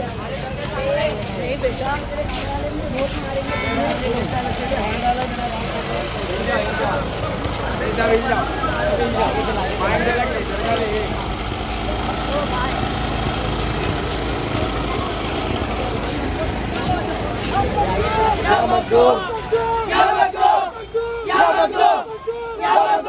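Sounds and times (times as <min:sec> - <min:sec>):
engine idling: 0:00.0 - 0:19.8
people's voices: 0:00.0 - 0:23.0.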